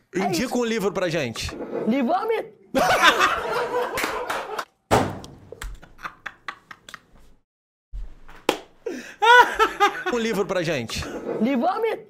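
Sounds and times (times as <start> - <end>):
man laughing hard: 2.8 - 4.6, 8.9 - 10.3
thump: 4.9 - 5.5
irregular slaps and taps: 8.3 - 8.8.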